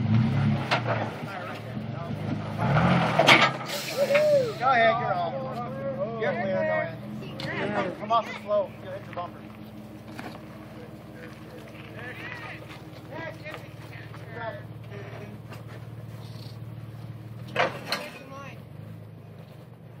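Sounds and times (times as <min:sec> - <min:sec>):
engine running low: 0:00.0 - 0:20.0
people talking: 0:01.0 - 0:02.5, 0:03.7 - 0:09.6, 0:10.6 - 0:15.6, 0:17.7 - 0:18.6.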